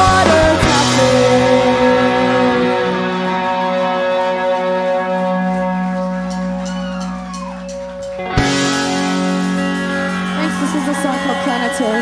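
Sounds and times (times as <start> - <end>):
electric guitar and bass chord: 0.0 - 12.0.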